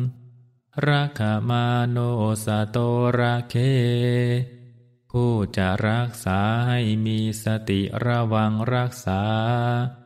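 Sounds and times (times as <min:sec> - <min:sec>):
man chanting: 0:00.0 - 0:00.2, 0:00.8 - 0:10.0.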